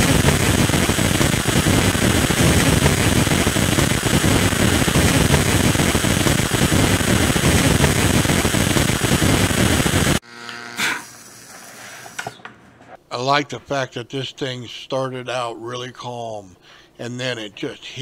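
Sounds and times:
electric arc buzzing and crackling: 0.0s - 11.5s.

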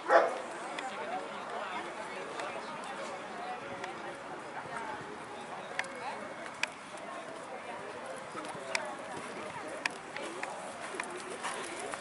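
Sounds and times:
murmur of distant voices: 0.0s - 12.0s.

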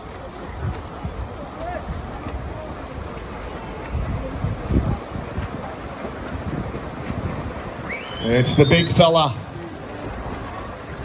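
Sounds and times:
outdoor noise hiss: 0.0s - 11.0s
wind buffeting microphone: 0.0s - 11.0s.

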